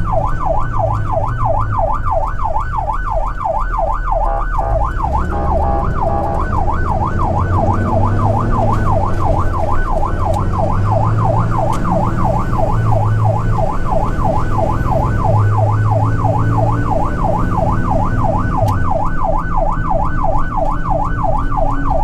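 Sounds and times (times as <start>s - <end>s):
electronic siren yelping: 0.0s - 22.0s
truck engine droning: 0.0s - 22.0s.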